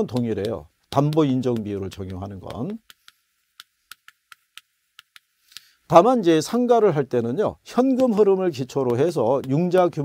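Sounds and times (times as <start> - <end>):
chalk clicking on a blackboard: 0.0 - 5.8, 7.9 - 10.0.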